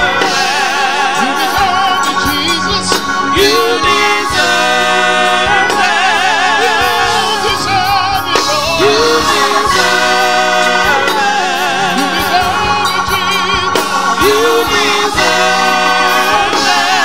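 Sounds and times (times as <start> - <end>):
gospel singing with vibrato: 0.0 - 17.0
instrumental accompaniment with beat: 0.0 - 17.0.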